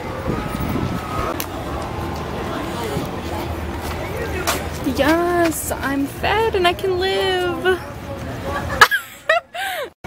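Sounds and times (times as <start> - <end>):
faint voices: 0.0 - 9.9.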